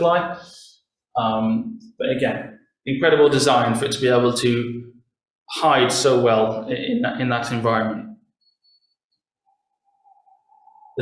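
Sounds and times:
speech: 0.0s - 0.5s, 1.2s - 4.8s, 5.5s - 8.2s.

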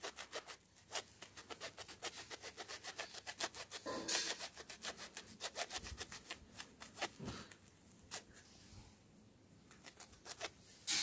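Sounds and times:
knife sawing through rope: 0.0s - 7.3s.

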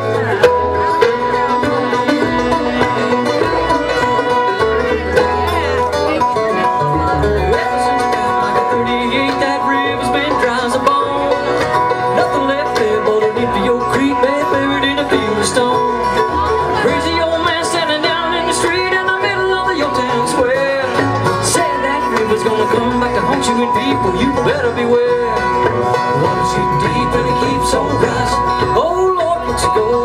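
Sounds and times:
bluegrass band playing: 0.0s - 30.0s.

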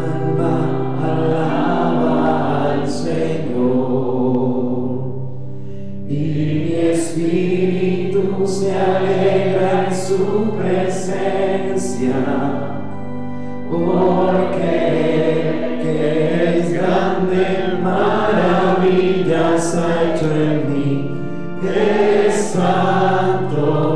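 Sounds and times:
voices singing a hymn: 0.0s - 5.4s, 6.1s - 23.9s
held accompanying chords: 0.0s - 23.9s.

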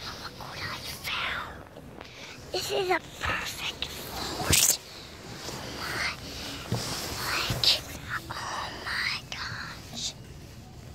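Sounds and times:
child whispering: 0.0s - 4.8s, 5.6s - 10.3s.

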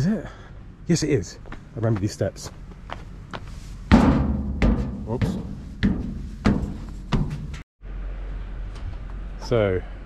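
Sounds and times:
heavy footsteps on metal stairs: 1.4s - 7.7s.

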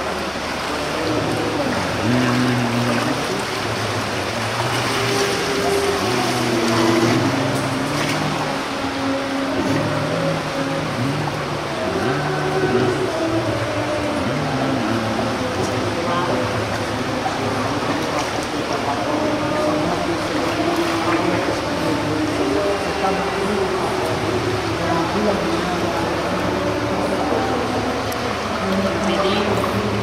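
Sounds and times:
pool water hissing: 0.0s - 30.0s
people singing a hymn: 4.9s - 30.0s.

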